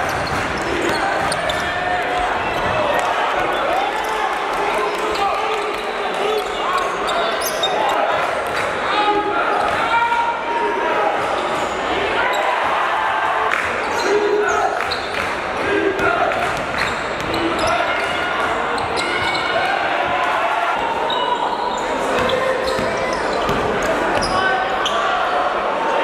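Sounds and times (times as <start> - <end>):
players and spectators calling out: 0.0 - 26.0.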